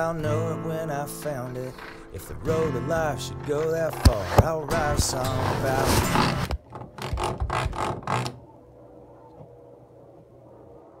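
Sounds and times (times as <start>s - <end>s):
faint steady hum: 8.4s - 11.0s.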